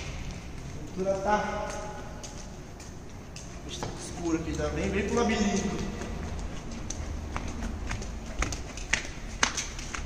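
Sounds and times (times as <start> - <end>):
footsteps on concrete: 0.0 - 10.0.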